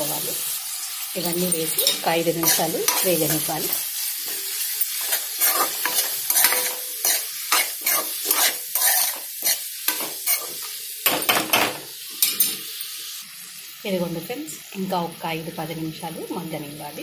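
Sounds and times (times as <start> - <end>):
food sizzling in hot oil: 0.0 - 17.0
metal spatula scraping pan: 1.7 - 10.6.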